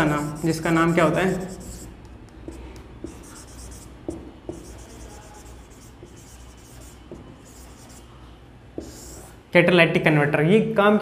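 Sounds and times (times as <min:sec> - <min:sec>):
marker scratching on whiteboard: 0:00.0 - 0:08.2, 0:08.8 - 0:09.4.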